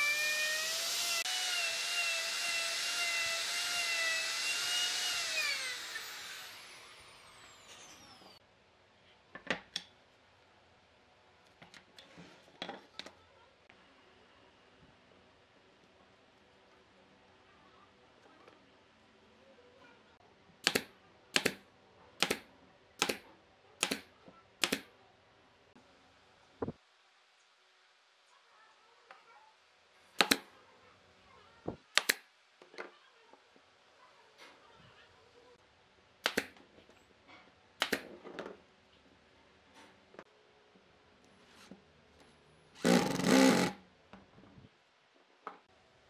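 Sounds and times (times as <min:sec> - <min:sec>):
impact driver driving screw into wood: 0:30.2 - 0:30.4, 0:42.8 - 0:43.8.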